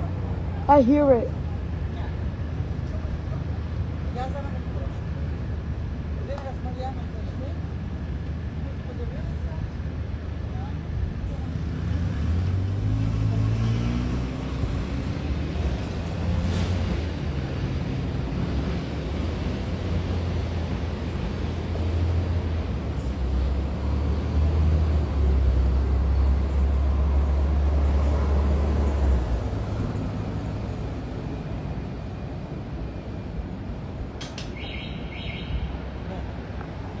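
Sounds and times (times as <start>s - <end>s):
subway train rumble: 14.6s - 37.0s.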